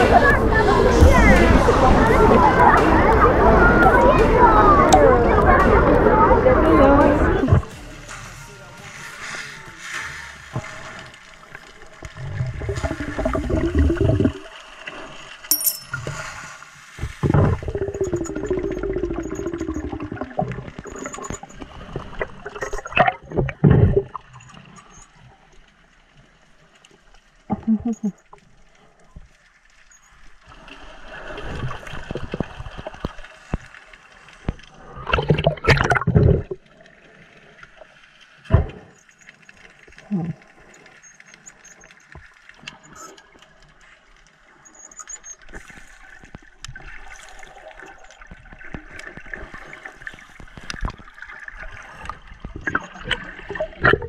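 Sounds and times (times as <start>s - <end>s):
diver exhaling bubbles underwater: 12.1s - 14.6s, 17.2s - 21.3s, 34.8s - 36.7s, 52.6s - 54.0s.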